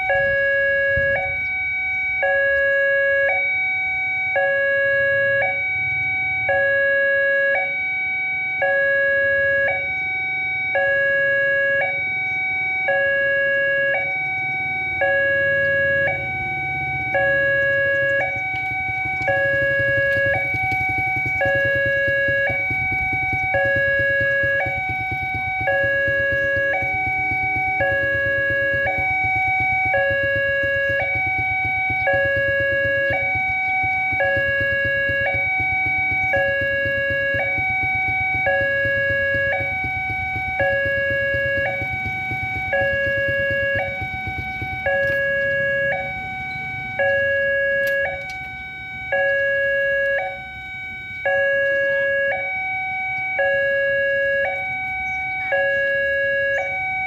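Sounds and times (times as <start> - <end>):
two-tone level crossing alarm: 0.0 - 57.0.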